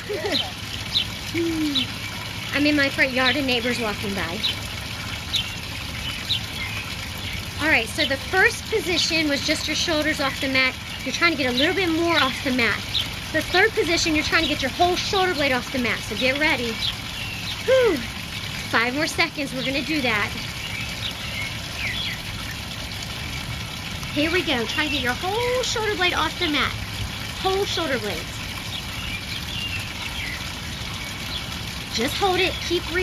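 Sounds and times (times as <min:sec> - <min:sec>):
fountain water splashing: 0:00.0 - 0:33.0.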